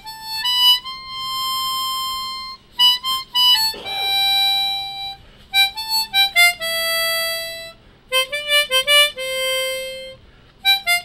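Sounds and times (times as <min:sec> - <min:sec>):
harmonica playing slow melody: 0:00.0 - 0:11.0.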